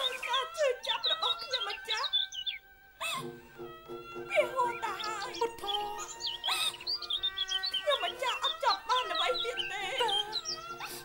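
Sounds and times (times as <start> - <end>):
melodic instrument chirping ornaments: 0.0 - 2.7, 4.0 - 11.0
opera ensemble music: 0.0 - 11.0.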